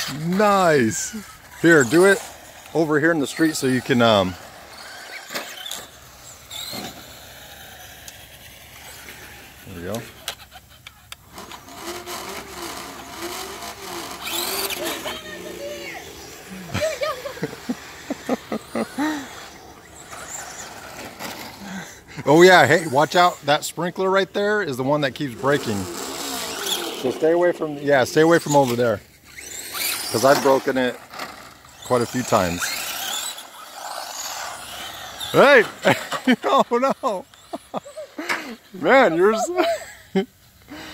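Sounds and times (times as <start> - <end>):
tyre noise on asphalt: 0.0 - 38.6
electric toy truck motors whining: 0.0 - 39.6
high electric motor whine: 11.2 - 23.3.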